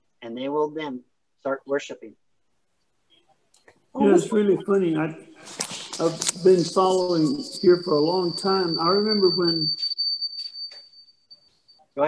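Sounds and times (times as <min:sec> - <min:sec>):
high-pitched tone: 0:04.0 - 0:11.4.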